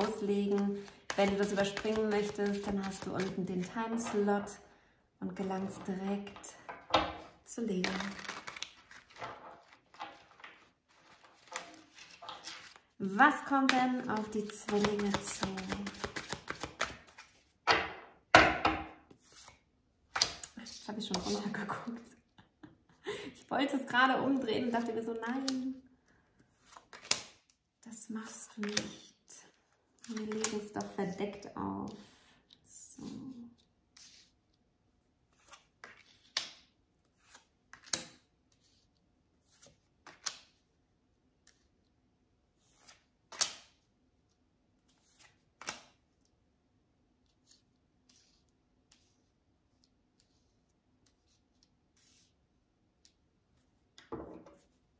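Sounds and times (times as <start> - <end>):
cards being shuffled: 0.0 - 4.3, 7.2 - 17.6, 26.6 - 27.5, 35.3 - 38.8, 39.4 - 40.6, 42.6 - 43.8
cards slapping on wooden table: 14.6 - 19.5, 42.8 - 43.8.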